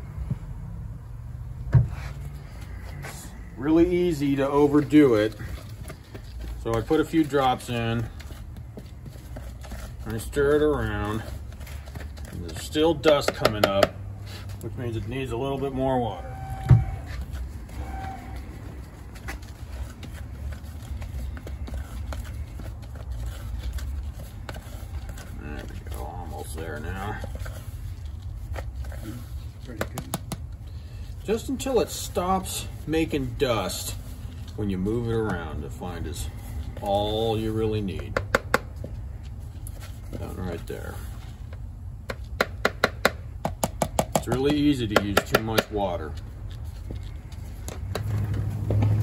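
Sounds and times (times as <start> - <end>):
metal spoon stirring powder: 19.4 - 30.2.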